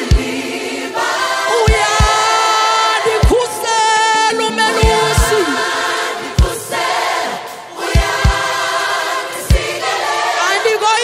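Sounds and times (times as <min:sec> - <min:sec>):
gospel choir with band: 0:00.0 - 0:11.0.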